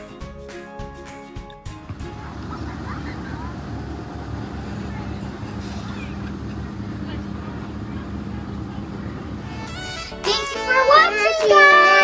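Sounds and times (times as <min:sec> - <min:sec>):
low outdoor rumble: 0:01.8 - 0:11.0
steady low hum: 0:01.9 - 0:09.8.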